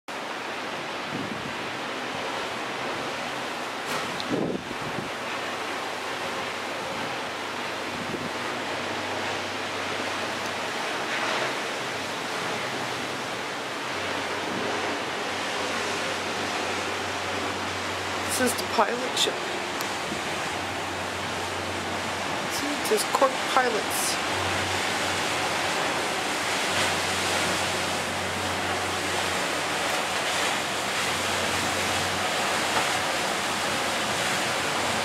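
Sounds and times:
choppy sea waves: 0.1 - 35.0
wind rushing over microphone: 0.4 - 35.0.

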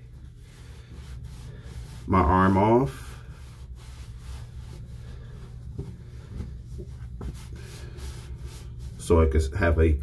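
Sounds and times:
towel rubbing on wet skin: 0.0 - 9.4
steady low hum: 0.0 - 10.0.

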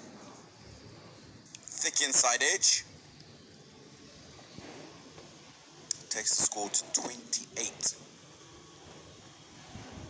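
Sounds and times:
faint broadcast background noise: 0.0 - 10.0.

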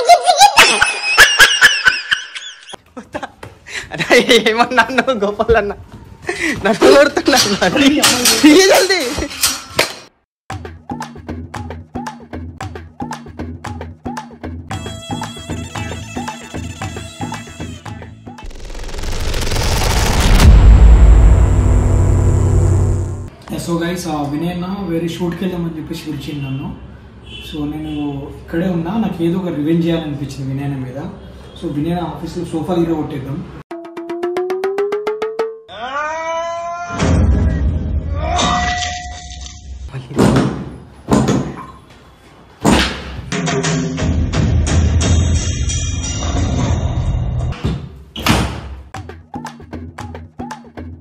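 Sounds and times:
background music: 10.5 - 18.5
bright tone sliding up: 18.5 - 23.3
deep bass rumble: 18.5 - 23.3
rapid pulsing tone rising: 18.5 - 23.3.

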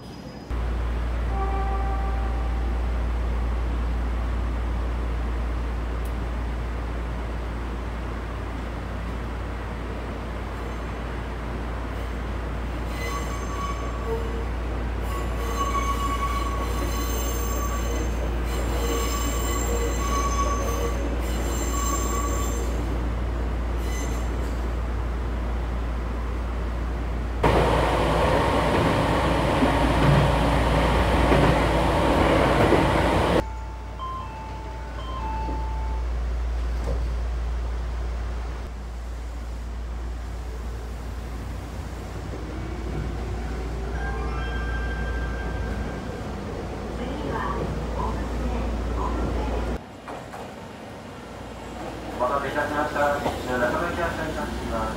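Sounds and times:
train wheels squealing: 0.0 - 0.5, 10.6 - 11.0, 12.8 - 23.0, 23.7 - 24.7, 43.4 - 46.3.

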